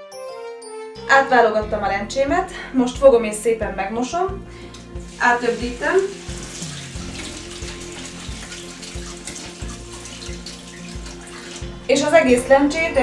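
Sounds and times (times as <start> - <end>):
kitchen tap running: 4.5 - 12.3.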